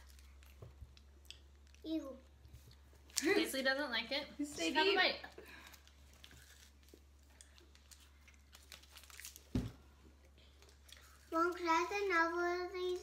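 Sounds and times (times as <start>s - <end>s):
candy wrapper crinkling and tearing: 5.3s - 9.6s.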